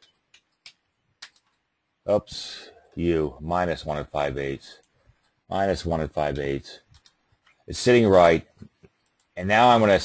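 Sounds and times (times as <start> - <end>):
keyboard and mouse clicks: 0.0 - 1.7, 6.8 - 7.6.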